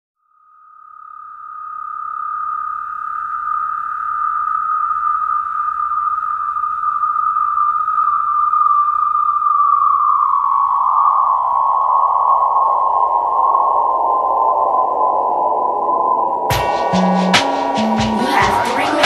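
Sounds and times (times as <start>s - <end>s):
sustained synth tone: 0.5s - 19.0s.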